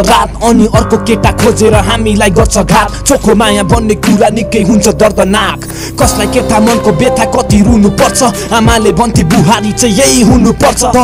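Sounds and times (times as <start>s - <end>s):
deep sliding bass: 0.0s - 11.0s
hi-hats: 0.0s - 11.0s
rapping over a beat: 0.0s - 11.0s.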